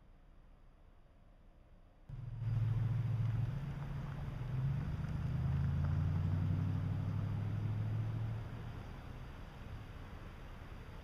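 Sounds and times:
low engine drone: 0:02.1 - 0:08.8.

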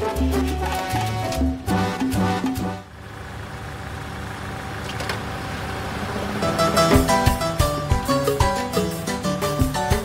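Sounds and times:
street traffic noise: 0:00.0 - 0:10.0
car engine idling: 0:00.3 - 0:10.0.

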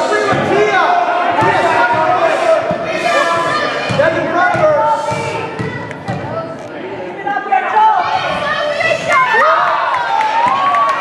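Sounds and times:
spectators' voices: 0:00.0 - 0:11.0
basketball bouncing on gym floor: 0:03.8 - 0:06.5.

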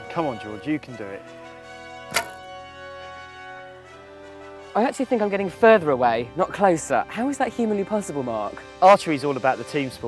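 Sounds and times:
background music with held notes: 0:00.0 - 0:10.0
bowstring thunk: 0:02.1 - 0:02.5.

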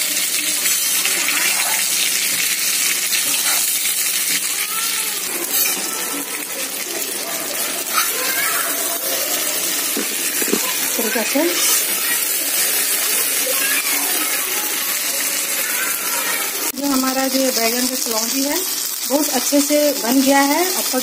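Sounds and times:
food sizzling in hot oil: 0:00.0 - 0:21.0.

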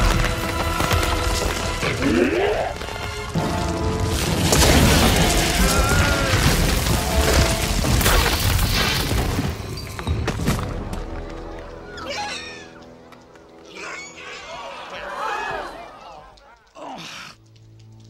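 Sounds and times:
rocks crashing: 0:00.0 - 0:11.7
dramatic orchestral music: 0:00.0 - 0:16.0.

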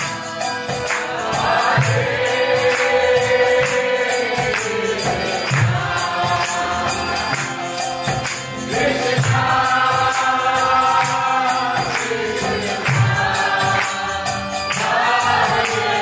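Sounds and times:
group singing devotional chant: 0:00.0 - 0:16.0
jingling metal percussion: 0:00.0 - 0:16.0.

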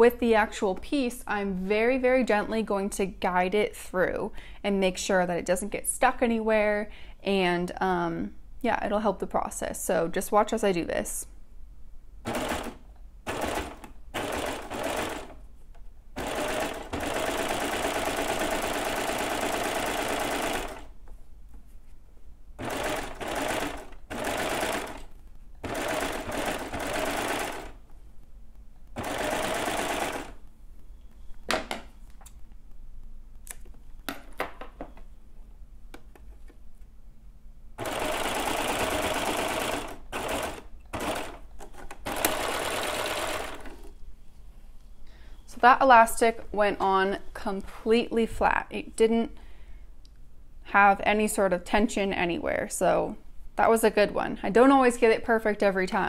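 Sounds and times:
serger sewing machine running: 0:12.3 - 0:15.4, 0:16.2 - 0:20.9, 0:22.6 - 0:27.8, 0:29.0 - 0:30.4, 0:37.8 - 0:41.4, 0:42.0 - 0:43.7.

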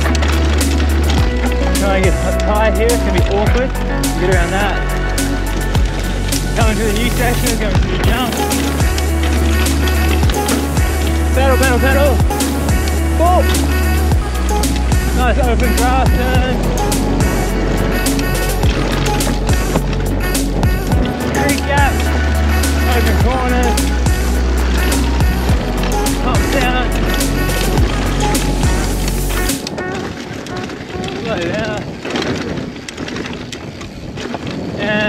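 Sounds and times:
music with heavy bass: 0:00.0 - 0:29.7
bike rattling over trail: 0:00.0 - 0:35.0.

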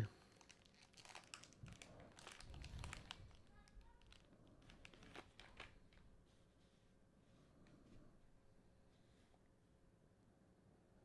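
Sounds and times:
foil pack crinkling: 0:00.2 - 0:06.0.

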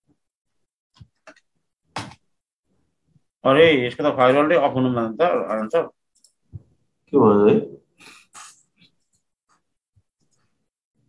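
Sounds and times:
man speaking: 0:03.4 - 0:06.0, 0:07.1 - 0:07.9.

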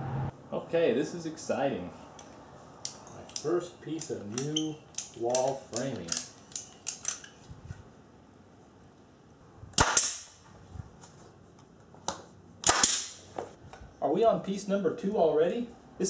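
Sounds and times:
nail gun firing: 0:09.8 - 0:10.4, 0:12.6 - 0:13.2.

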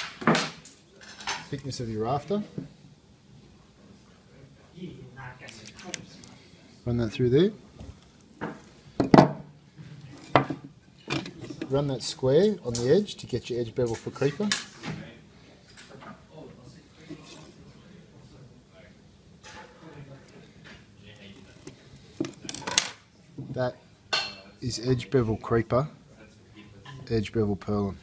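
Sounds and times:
tools knocking on workbench: 0:08.4 - 0:09.5, 0:10.3 - 0:11.3.

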